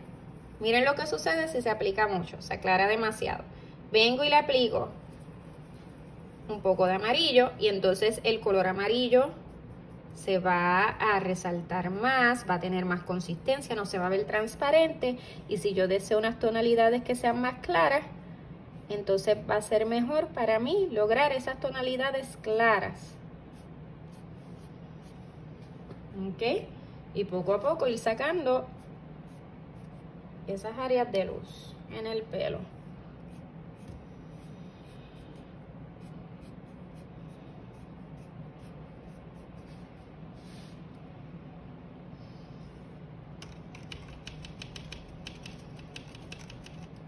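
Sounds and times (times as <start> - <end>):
paintbrush strokes on paper: 0.0 - 1.2, 4.7 - 7.1, 23.0 - 25.8, 28.8 - 30.1, 32.7 - 41.0
steady low hum: 0.0 - 47.0
paintbrush dry ticks and scratches: 4.9 - 6.8, 33.2 - 40.7, 43.4 - 47.0.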